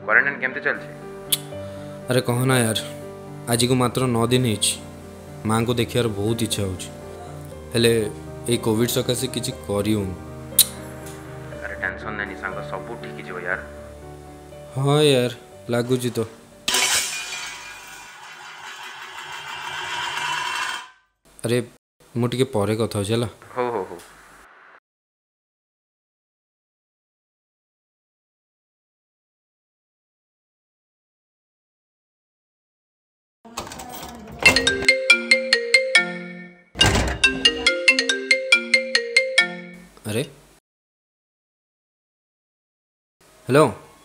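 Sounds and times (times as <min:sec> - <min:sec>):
object dropped with ringing rattle: 0:16.7 - 0:19.0
marimba-like phone ringtone: 0:34.4 - 0:39.9.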